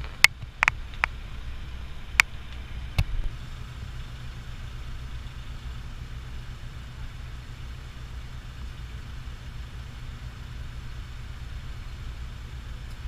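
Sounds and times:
ship engine rumble: 0.0s - 13.0s.

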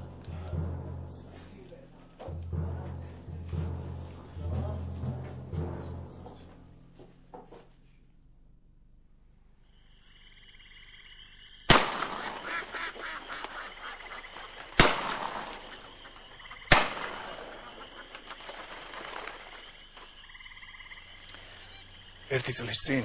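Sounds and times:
crackling noise: 9.6s - 23.0s
loud bangs: 11.7s - 20.0s.

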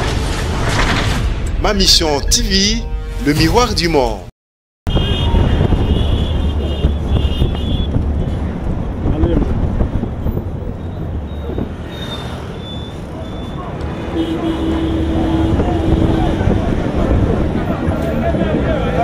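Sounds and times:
wind on microphone: 4.9s - 11.9s, 15.1s - 19.0s
traffic engines running: 4.9s - 19.0s.

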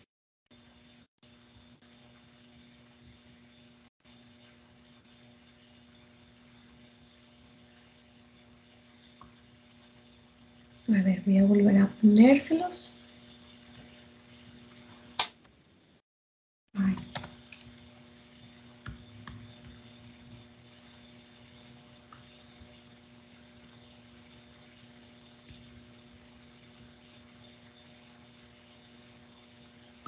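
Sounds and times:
steady low hum: 0.5s - 16.0s, 16.8s - 30.0s
keyboard and mouse clicks: 16.8s - 17.7s.

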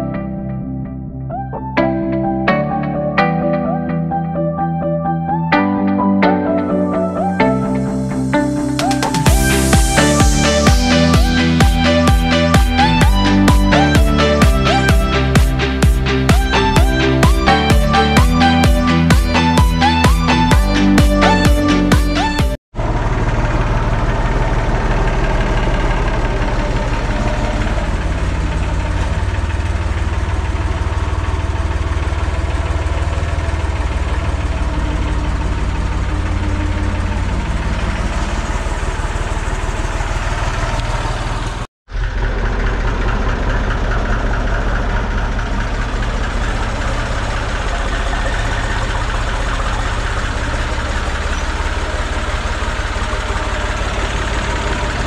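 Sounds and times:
tractor diesel engine idling: 6.4s - 55.0s.

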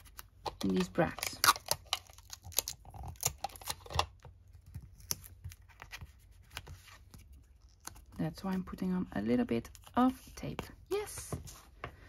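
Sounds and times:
paper and tape handling: 0.0s - 8.8s.

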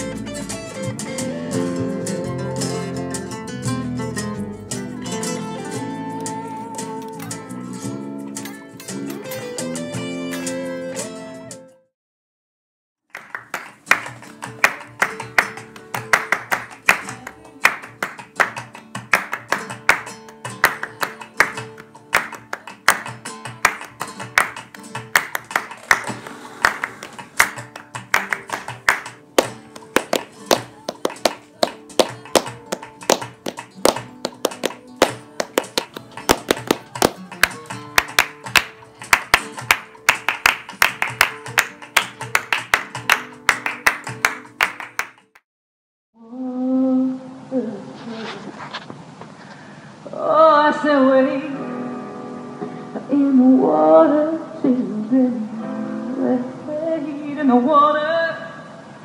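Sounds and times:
flamenco guitar: 0.0s - 11.6s, 13.2s - 45.3s
hands clapping rapidly: 13.1s - 45.4s.

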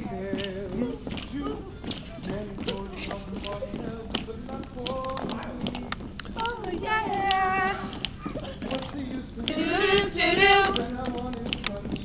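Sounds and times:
young voices singing together: 0.0s - 12.0s.

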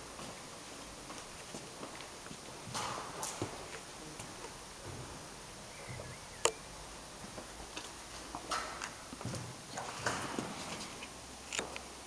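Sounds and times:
footsteps walking: 0.2s - 5.2s.

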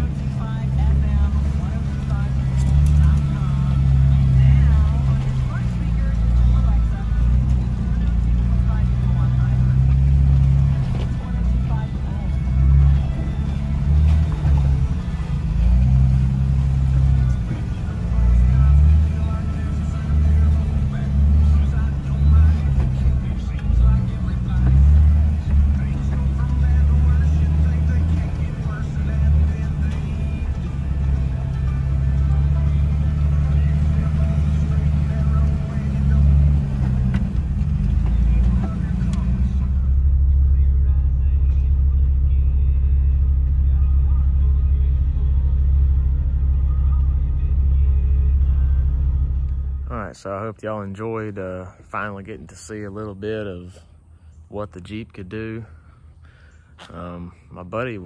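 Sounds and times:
engine revving under load: 0.0s - 40.7s.

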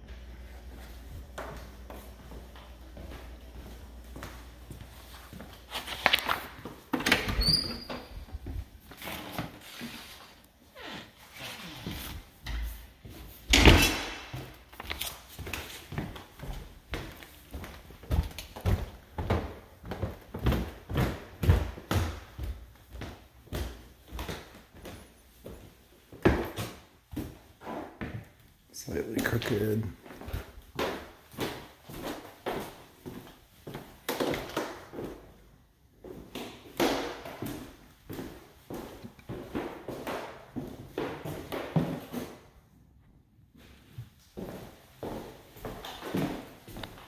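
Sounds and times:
footsteps on wooden floors: 0.4s - 28.5s, 43.6s - 47.0s.

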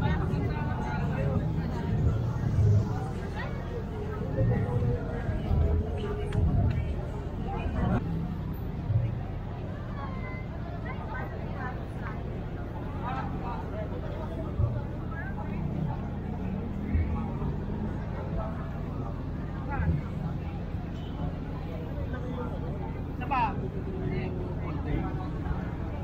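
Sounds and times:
crowd murmur: 0.0s - 26.0s
people talking indistinctly: 0.0s - 26.0s.

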